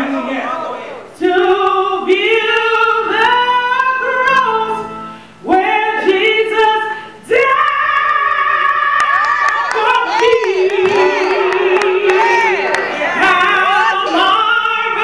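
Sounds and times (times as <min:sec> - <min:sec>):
woman singing gospel: 0:00.0 - 0:15.0.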